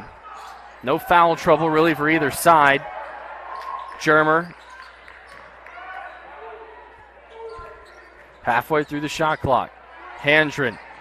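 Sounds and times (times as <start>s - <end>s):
crowd murmur in a gym: 0.0s - 11.0s.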